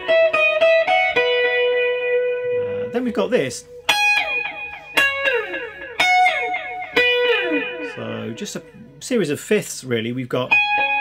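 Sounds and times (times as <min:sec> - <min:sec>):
electric guitar with delay: 0:00.0 - 0:03.0, 0:03.6 - 0:09.0, 0:10.5 - 0:11.0.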